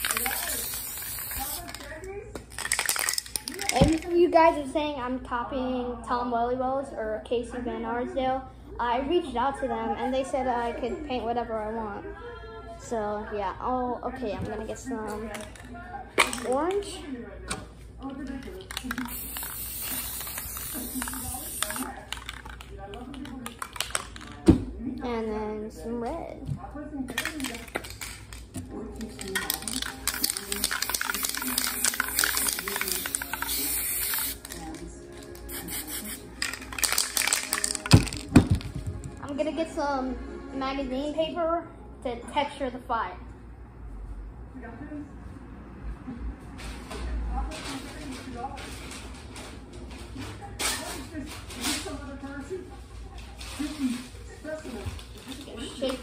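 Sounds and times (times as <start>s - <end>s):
aerosol spray can hissing: 0.0s - 1.8s, 18.9s - 21.9s, 30.1s - 34.6s, 35.5s - 37.8s
background voices talking: 14.3s - 39.5s.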